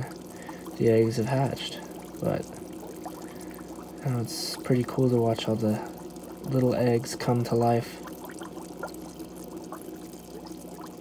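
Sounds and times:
air bubbles bubbling: 0.0 - 11.0
steady low hum: 0.0 - 11.0.

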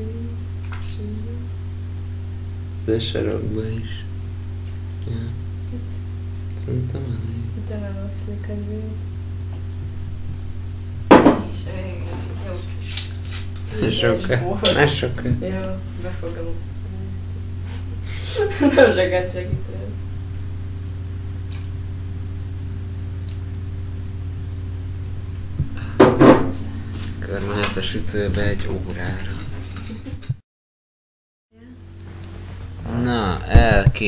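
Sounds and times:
person's voice: 0.0 - 1.5, 5.0 - 5.9, 6.6 - 9.0, 13.7 - 17.2, 27.0 - 30.2, 32.8 - 34.0
steady low hum: 0.0 - 30.4, 31.6 - 34.0
kitchenware clattering: 11.1 - 12.6.

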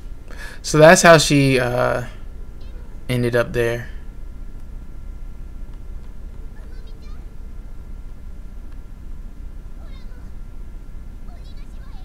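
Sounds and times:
low steady rumble: 0.0 - 12.0
girl's high-pitched voice: 2.6 - 3.0, 6.5 - 7.3, 9.8 - 10.4, 11.3 - 12.0.

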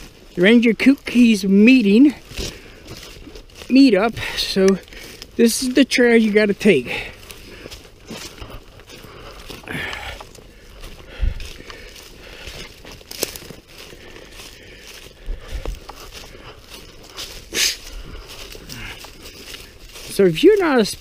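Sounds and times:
footsteps on dry leaves: 0.0 - 21.0
twigs and brush crackling: 0.0 - 21.0.

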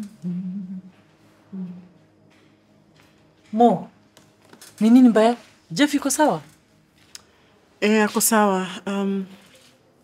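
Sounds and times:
woman humming low notes: 0.0 - 2.1.

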